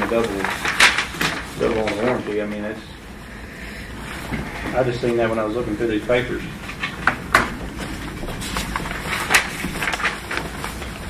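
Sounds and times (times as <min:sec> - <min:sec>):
paper rustling: 0:00.0 - 0:03.0, 0:03.8 - 0:11.0
low room hum: 0:00.0 - 0:11.0.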